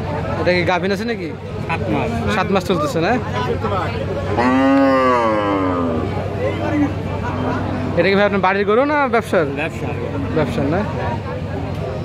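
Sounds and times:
cow mooing: 0:04.4 - 0:06.2, 0:07.2 - 0:08.1.

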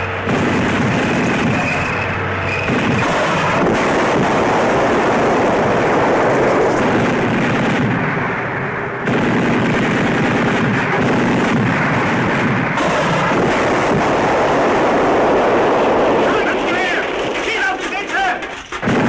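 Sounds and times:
rifle and machine gun fire: 0:00.0 - 0:06.1, 0:09.0 - 0:19.0
artillery blasts: 0:00.0 - 0:19.0.

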